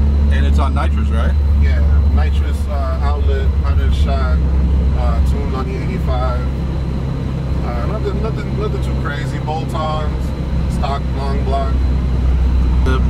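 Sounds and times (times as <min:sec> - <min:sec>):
car engine drone: 0:00.0 - 0:13.0
road noise: 0:00.0 - 0:13.0
man talking: 0:00.3 - 0:06.6, 0:07.6 - 0:11.8.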